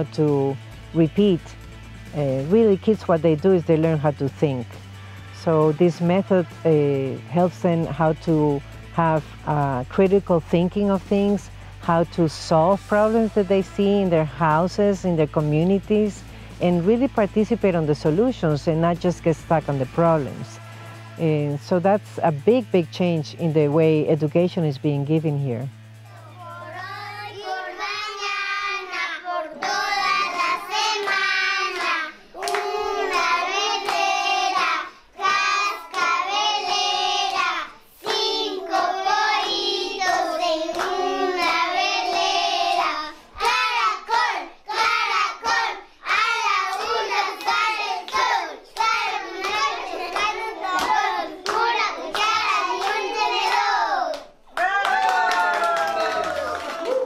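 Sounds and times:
children singing together: 26.1 - 54.3
hand claps: 29.6 - 34.1, 35.2 - 38.4, 40.0 - 43.8, 46.1 - 57.0.

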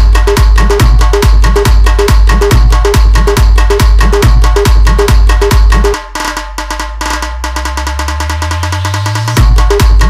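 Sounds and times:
fast drum roll: 0.0 - 10.0.

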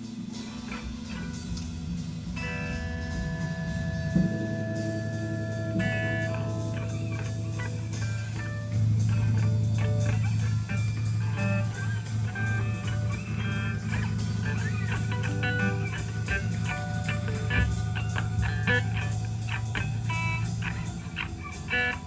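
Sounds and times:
electric guitars jamming: 0.0 - 22.0.

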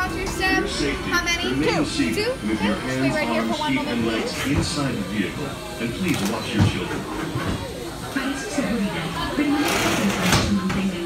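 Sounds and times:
indistinct voices indoors: 0.0 - 11.0.

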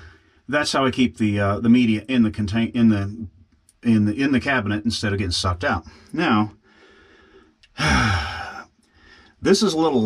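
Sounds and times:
man sighing: 7.7 - 8.6.

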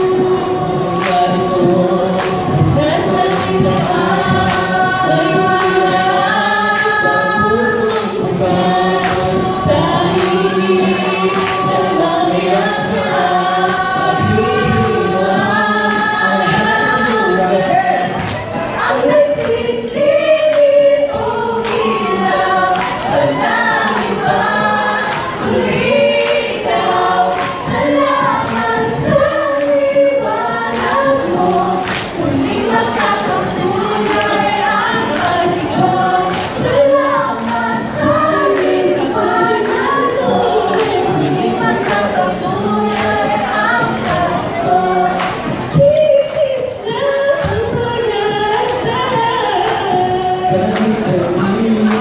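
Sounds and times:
a cappella group singing: 0.0 - 52.0
percussive beat: 0.0 - 52.0.

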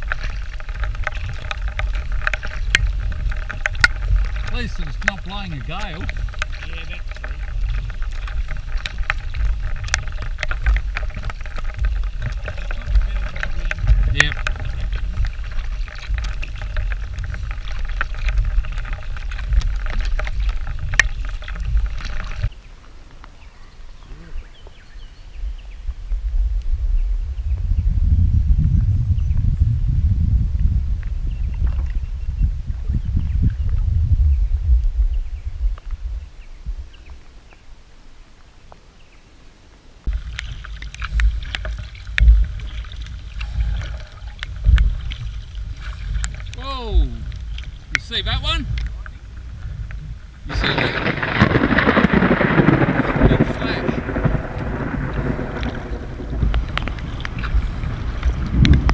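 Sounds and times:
paddles splashing in water: 0.0 - 25.3, 40.0 - 58.9
low rumble: 48.6 - 58.9.

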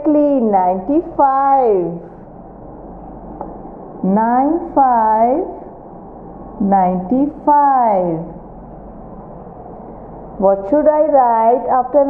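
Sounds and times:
low mains hum: 0.0 - 12.0.

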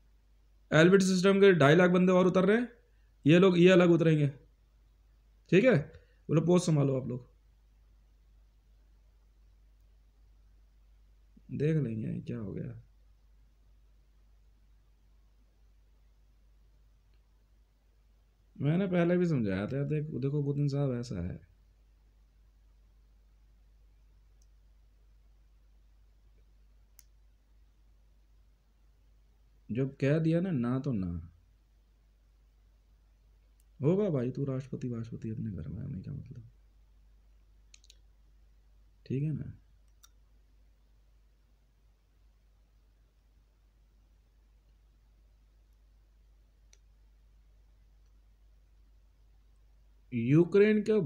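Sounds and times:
faint tick: 26.4 - 27.2, 46.7 - 46.9.

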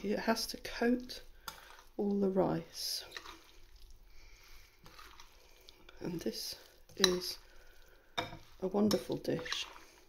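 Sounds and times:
soft squishing of stirred food: 0.0 - 10.0.

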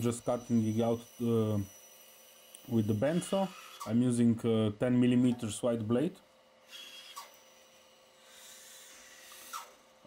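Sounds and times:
bandsaw cutting wood: 0.0 - 4.0.

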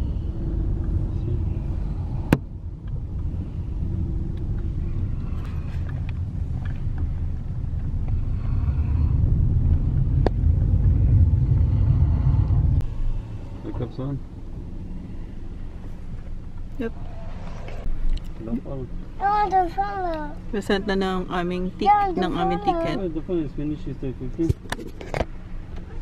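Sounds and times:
car driving rumble inside cabin: 0.0 - 26.0.

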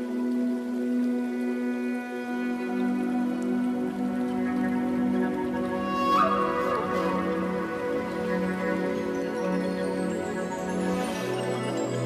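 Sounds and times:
soft crackling noise: 0.0 - 12.0.

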